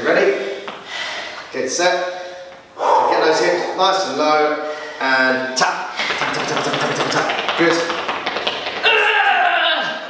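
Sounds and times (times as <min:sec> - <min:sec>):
trainers tapping on hard floor: 0:06.0 - 0:09.4.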